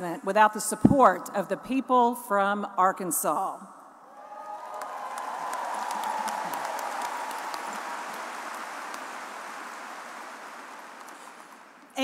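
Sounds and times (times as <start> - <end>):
large audience applauding: 4.1 - 12.0.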